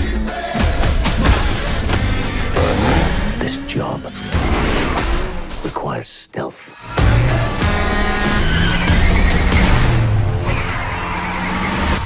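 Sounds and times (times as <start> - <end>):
loud trailer music: 0.0 - 6.0, 6.8 - 12.0
car engine accelerating hard: 6.9 - 12.0.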